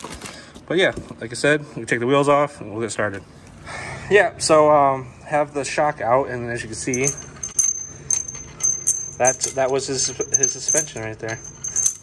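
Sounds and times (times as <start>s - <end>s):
metal hardware clinking and ringing: 6.5s - 12.0s.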